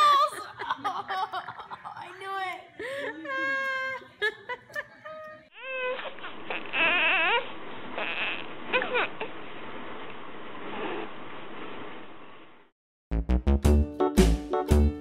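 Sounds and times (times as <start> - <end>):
boy laughing: 0.0 - 5.5
infant crying: 5.5 - 9.3.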